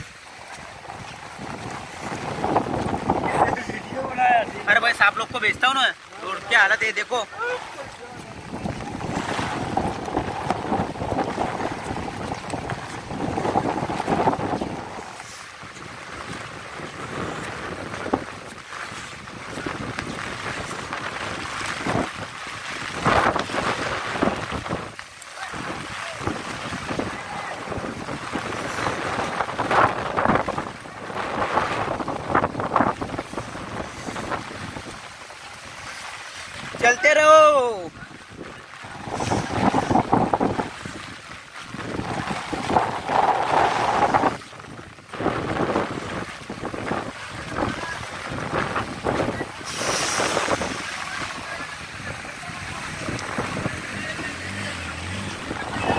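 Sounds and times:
wind on microphone: 0.0s - 5.6s, 7.3s - 55.9s
floodwater churning and splashing: 0.0s - 55.9s.

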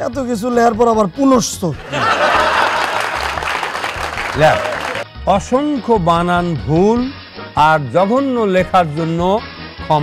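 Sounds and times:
audience applauding: 2.2s - 5.1s.

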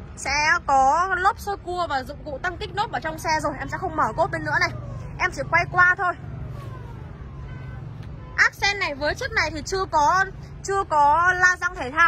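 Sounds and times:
motor vehicle hum: 0.0s - 12.0s.

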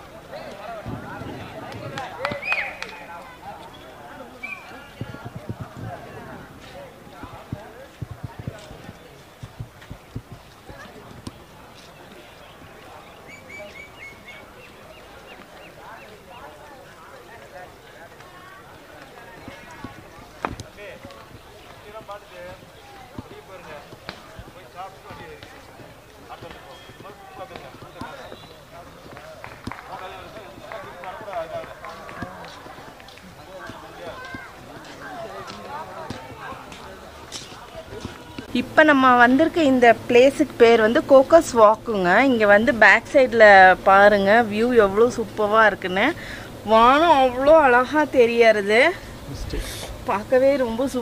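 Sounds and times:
footsteps on paved path: 0.0s - 51.0s
people talking: 0.0s - 51.0s.

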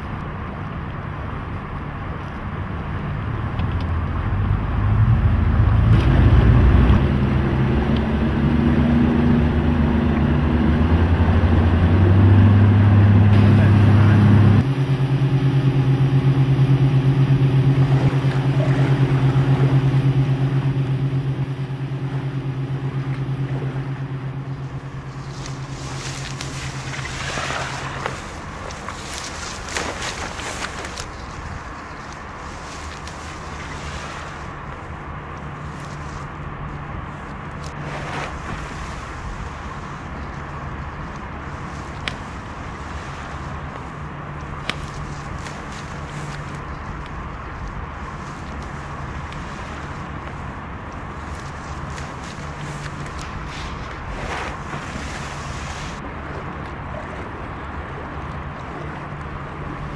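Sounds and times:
outboard motor running: 4.1s - 59.9s.

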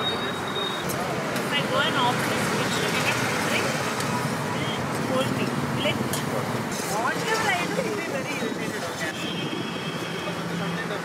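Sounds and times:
traffic hum: 0.0s - 11.0s.

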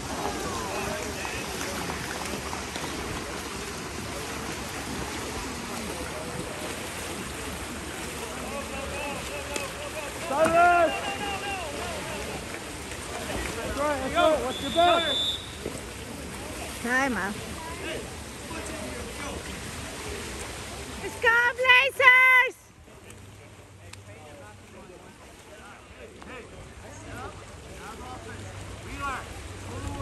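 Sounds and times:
splashing water: 0.0s - 21.5s.

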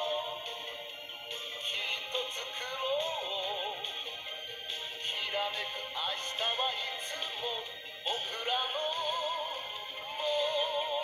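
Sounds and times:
singer with band on television: 0.0s - 11.0s.

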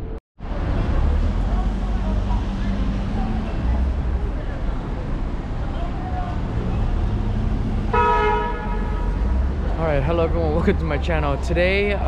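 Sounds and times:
city traffic rumble: 0.0s - 12.0s
vehicle horn: 7.9s - 9.4s.

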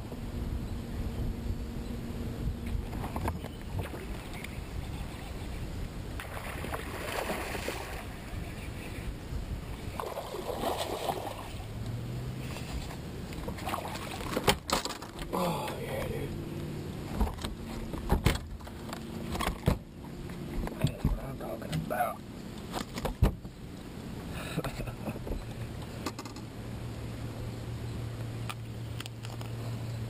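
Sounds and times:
fish knocking and rattling on deck: 13.4s - 15.3s.

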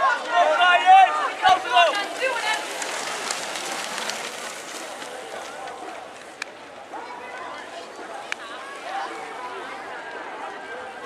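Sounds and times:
spectators shouting: 0.0s - 6.4s
bike tyres rushing over dirt: 0.0s - 9.3s.

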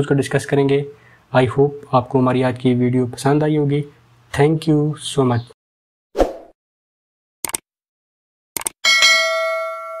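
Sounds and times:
quick clicks: 7.4s - 7.6s, 8.6s - 8.8s
bell ding: 8.8s - 10.0s.

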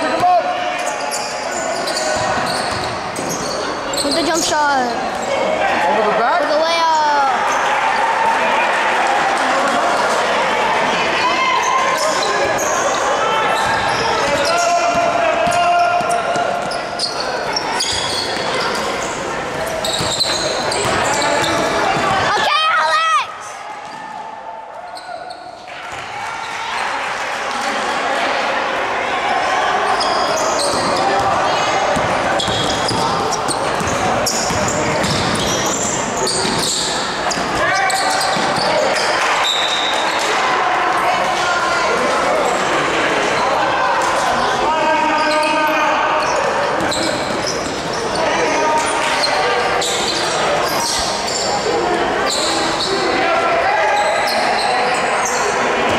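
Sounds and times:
shouting and chatter: 0.0s - 55.9s.

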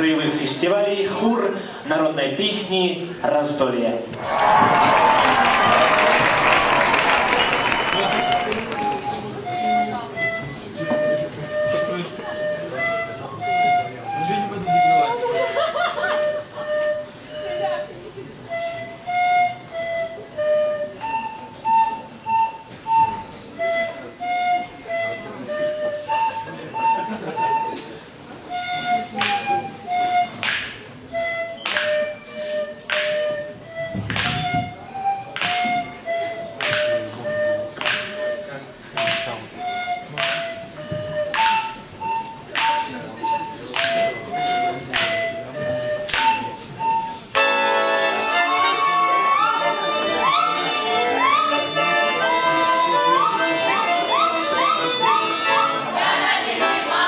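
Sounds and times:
high clear folk melody: 6.8s - 27.8s, 28.4s - 57.0s
accordion: 7.3s - 57.0s
sharp percussive beats: 30.2s - 36.0s, 36.6s - 46.6s.

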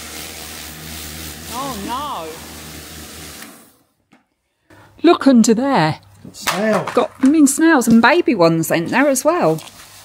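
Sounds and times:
pressure washer motor humming: 0.0s - 3.8s.

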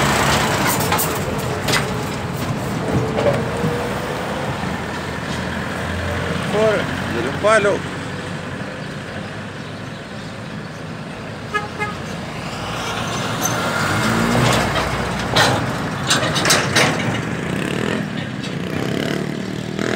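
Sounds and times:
truck driving past: 0.0s - 19.9s.

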